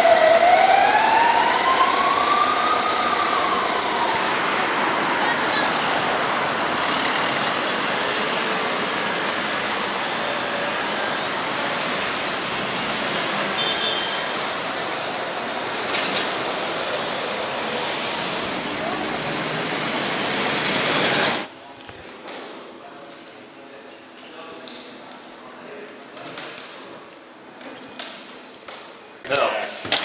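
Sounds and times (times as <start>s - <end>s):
city street traffic: 0.0s - 22.1s.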